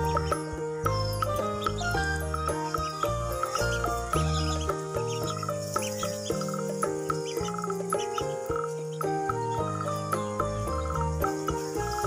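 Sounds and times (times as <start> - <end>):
ducklings peeping: 0.0 - 12.0
melodic background music: 0.0 - 12.0.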